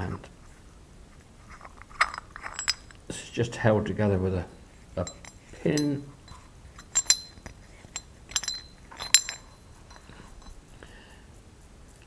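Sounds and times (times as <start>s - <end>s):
metal parts clinking: 1.5s - 3.1s, 5.0s - 10.7s.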